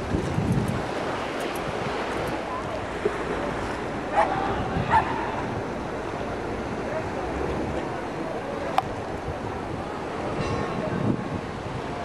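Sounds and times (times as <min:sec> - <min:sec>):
surf: 0:00.0 - 0:12.0
wind: 0:00.0 - 0:12.0
dog barking: 0:04.2 - 0:05.2.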